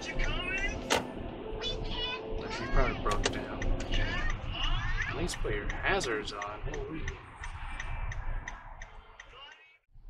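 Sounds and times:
low road rumble: 0.0s - 10.0s
turn signal clicking: 3.2s - 9.7s.

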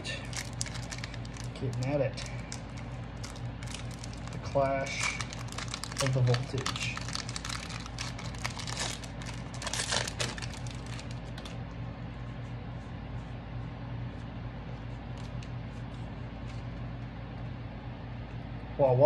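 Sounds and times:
foil wrapper tearing and crinkling: 0.0s - 11.6s
steady low hum: 0.0s - 19.0s.

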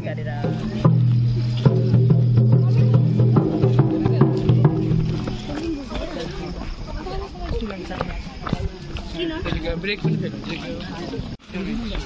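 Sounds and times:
sharp drum strikes: 0.3s - 5.4s, 9.7s - 10.6s.

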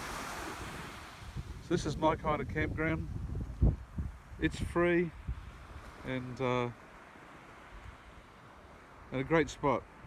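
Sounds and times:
sea breeze hiss: 0.0s - 2.2s, 3.6s - 10.0s.

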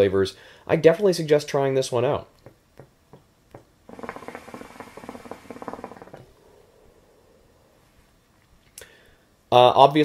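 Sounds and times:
water bubbling in hookah: 3.9s - 6.7s.

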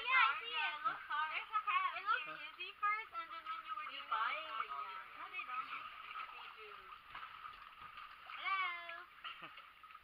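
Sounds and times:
water moving: 0.0s - 10.0s.

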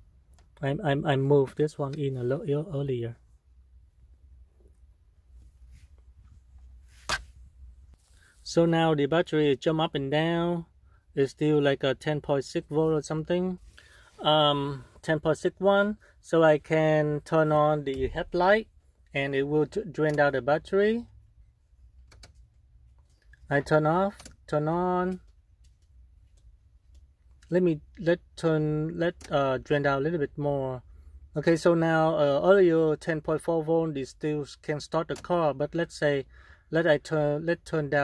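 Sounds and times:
soft rustles: 4.8s - 8.5s.

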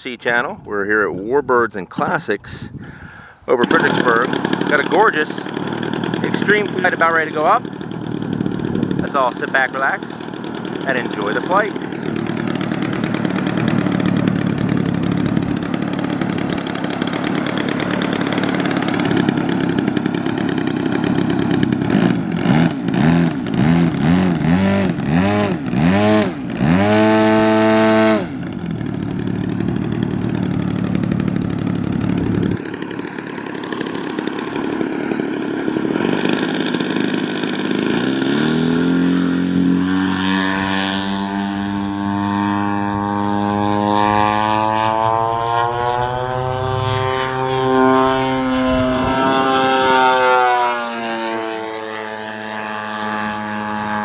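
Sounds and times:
model plane engine revving: 3.5s - 54.0s.

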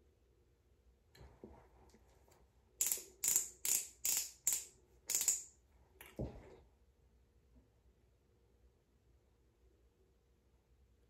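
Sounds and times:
ratcheting clicks of twist pen: 2.8s - 5.5s.

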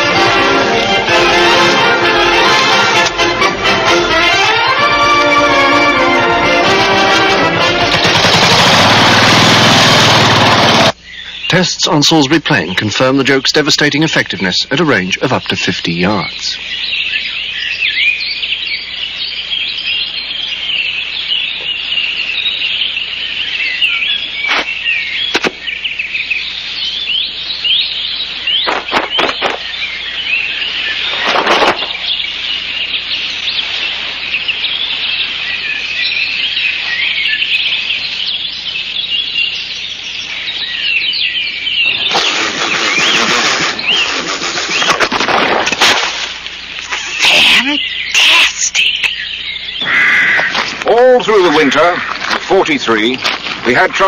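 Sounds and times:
rushing noise: 7.1s - 11.0s
small birds chirping: 10.7s - 45.1s, 46.4s - 54.0s.

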